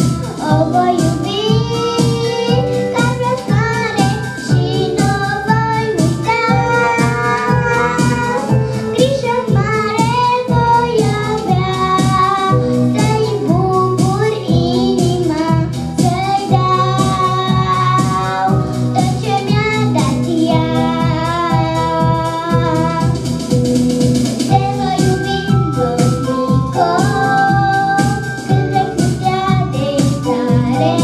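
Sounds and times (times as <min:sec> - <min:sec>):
girl singing into microphone: 0:00.0 - 0:23.2, 0:24.5 - 0:31.0
instrumental accompaniment with beat: 0:00.0 - 0:31.0.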